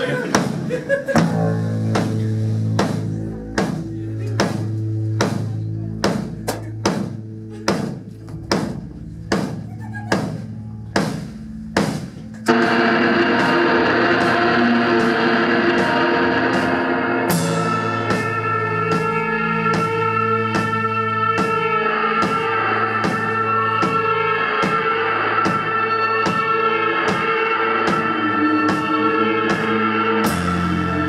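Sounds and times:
dense wall of guitar noise: 0:00.0 - 0:31.0
drum kit slow beat: 0:00.0 - 0:31.0
held bass guitar note: 0:01.2 - 0:24.4.

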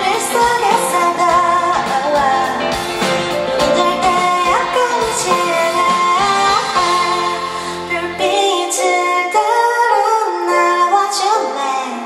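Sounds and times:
woman singing into a microphone: 0:00.0 - 0:02.8, 0:03.6 - 0:12.0
keyboard and band accompaniment: 0:00.0 - 0:12.0.

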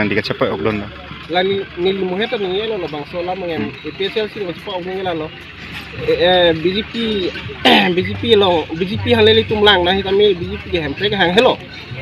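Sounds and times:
man speaking: 0:00.0 - 0:05.3, 0:06.0 - 0:11.6.

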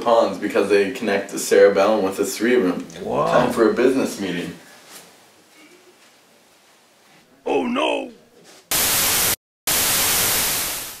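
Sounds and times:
tv static hiss: 0:08.7 - 0:11.0.

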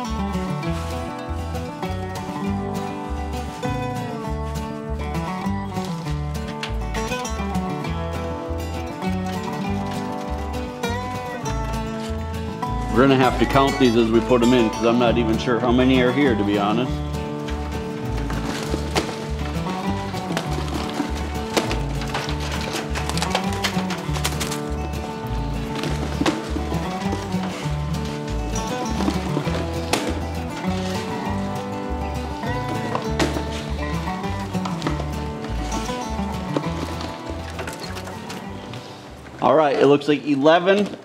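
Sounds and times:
instrumental music with bass line: 0:00.0 - 0:39.5.

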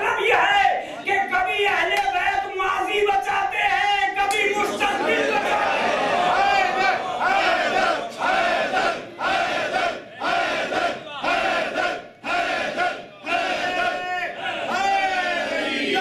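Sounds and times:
congregation chanting in unison: 0:02.9 - 0:16.0.

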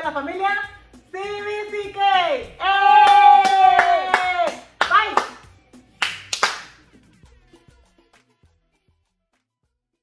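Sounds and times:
people cheering and shouting: 0:02.0 - 0:05.2
hand claps: 0:03.0 - 0:07.0.

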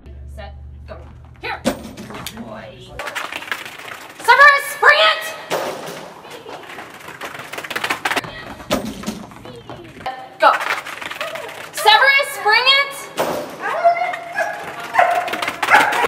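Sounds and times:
knocks and thumps: 0:00.9 - 0:04.4, 0:05.5 - 0:11.9.

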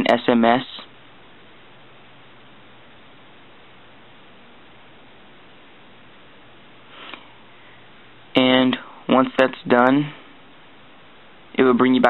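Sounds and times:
steady low hiss: 0:00.0 - 0:12.0
short sniff: 0:06.9 - 0:07.7.

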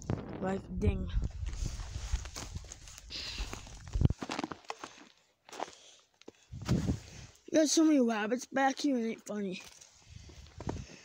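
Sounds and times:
footsteps through snow and brush: 0:01.1 - 0:07.4
rustling: 0:01.3 - 0:05.0.

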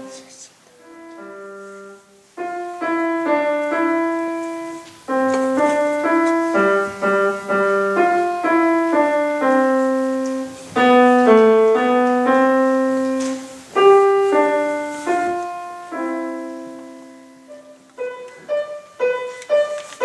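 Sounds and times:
slow grand piano tune: 0:00.0 - 0:20.0.

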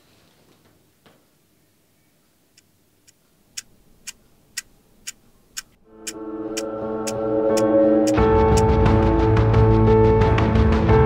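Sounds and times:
clockwork ticking: 0:03.1 - 0:08.2.

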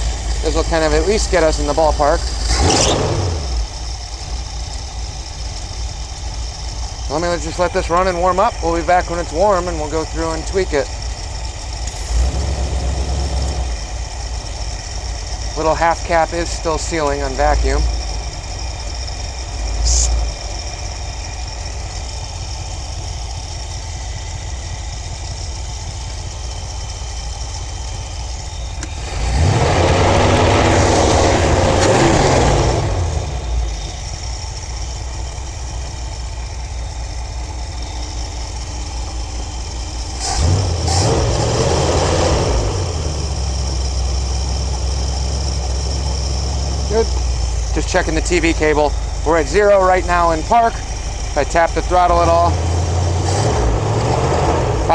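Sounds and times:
car engine idling and revving: 0:00.0 - 0:54.9.

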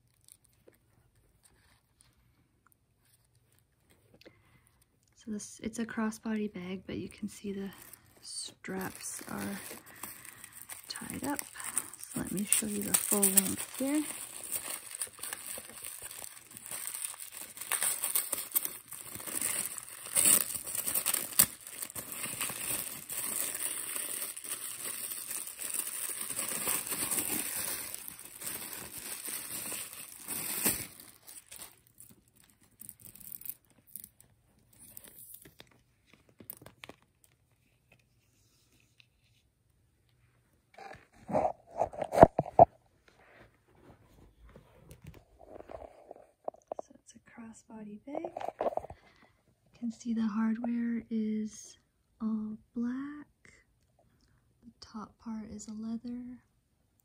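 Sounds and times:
tissue paper crinkling: 0:07.6 - 0:39.0, 0:45.3 - 0:46.8.

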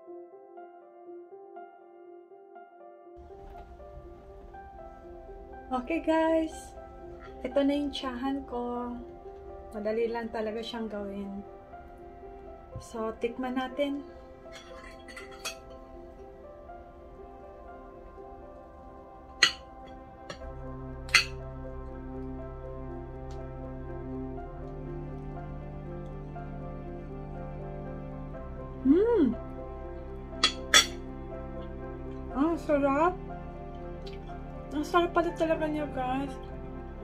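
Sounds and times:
soft background music: 0:00.0 - 0:37.0
cutlery clinking on plate: 0:14.5 - 0:15.8.

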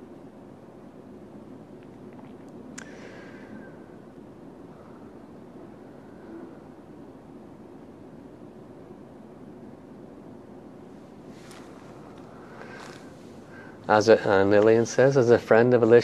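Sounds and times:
room background hiss: 0:00.0 - 0:16.0.

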